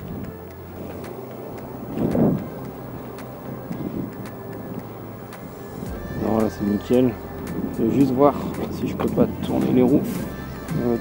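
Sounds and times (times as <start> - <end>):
background music: 0.0 - 11.0
car engine idling: 0.0 - 11.0.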